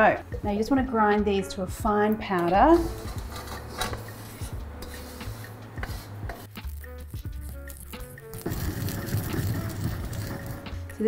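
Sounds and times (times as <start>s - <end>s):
background music: 0.0s - 11.0s
pestle grinding in stone mortar: 2.8s - 10.8s.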